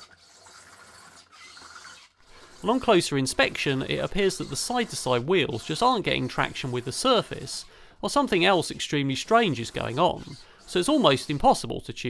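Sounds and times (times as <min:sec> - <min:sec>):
small motor whirring: 0:00.0 - 0:02.8, 0:09.2 - 0:11.4.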